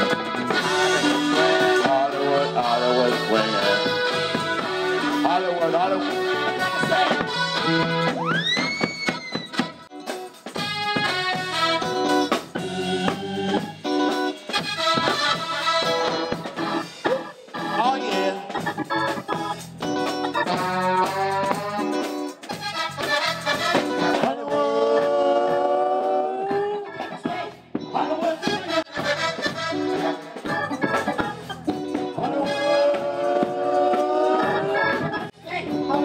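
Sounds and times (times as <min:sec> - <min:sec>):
soul band playing: 0:00.0 - 0:36.0.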